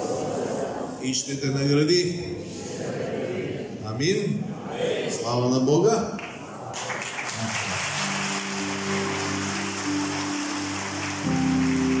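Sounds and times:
congregation clapping: 0:06.2 - 0:12.0
music of long held chords: 0:07.6 - 0:12.0.

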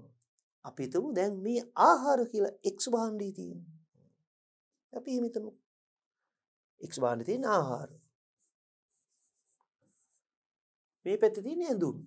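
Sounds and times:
pen scratching on whiteboard screen: 0:07.9 - 0:10.3.

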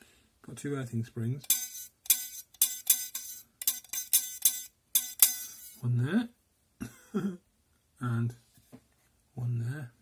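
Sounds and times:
metal spring twanging: 0:01.4 - 0:05.8.

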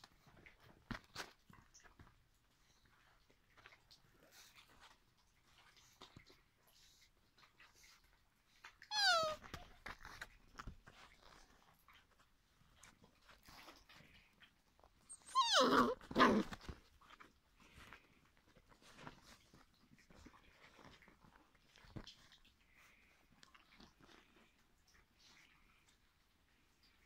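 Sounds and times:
soft rustling: 0:00.0 - 0:27.0
puppy whining: 0:08.8 - 0:10.3, 0:14.9 - 0:16.8.

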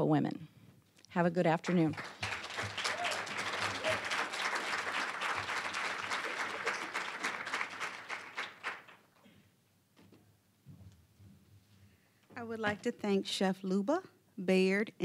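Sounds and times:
audience applauding: 0:01.6 - 0:09.1.

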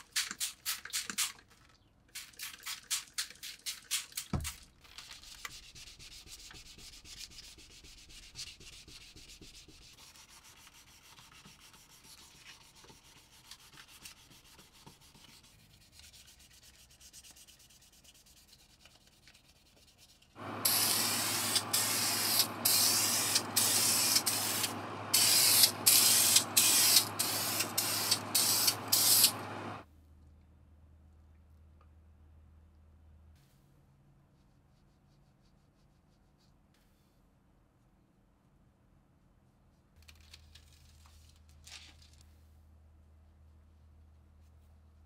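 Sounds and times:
spray paint hissing bursts: 0:20.4 - 0:29.8
steady hum: 0:20.4 - 0:29.8.

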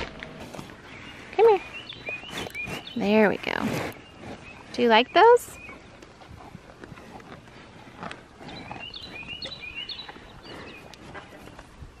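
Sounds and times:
cow chewing crunchily: 0:00.0 - 0:12.0.

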